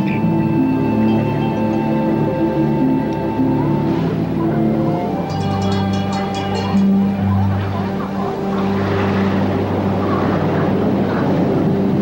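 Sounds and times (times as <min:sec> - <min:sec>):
orchestral held low notes: 0:00.0 - 0:12.0
dense rushing noise: 0:08.4 - 0:12.0.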